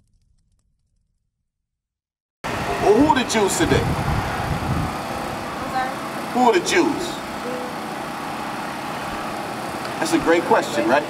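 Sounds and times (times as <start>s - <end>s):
low mechanical hum: 2.5s - 11.0s.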